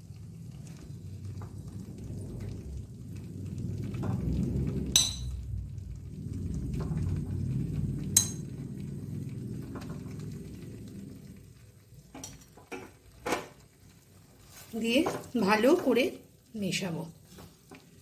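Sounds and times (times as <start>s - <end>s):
masala cooking rumble: 0.0s - 18.0s.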